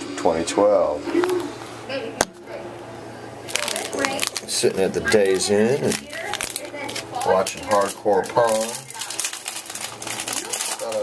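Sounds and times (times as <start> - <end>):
plastic wrapper crinkling: 3.5 - 11.0.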